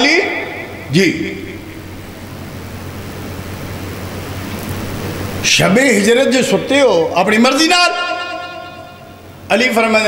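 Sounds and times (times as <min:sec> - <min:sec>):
man speaking over public address: 0:00.0 - 0:01.8, 0:05.4 - 0:08.7, 0:09.5 - 0:10.0
low hum: 0:00.0 - 0:10.0.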